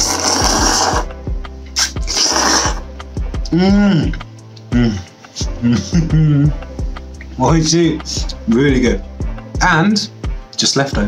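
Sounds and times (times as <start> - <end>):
person slurping noodles: 0.0 - 1.2, 1.8 - 3.0.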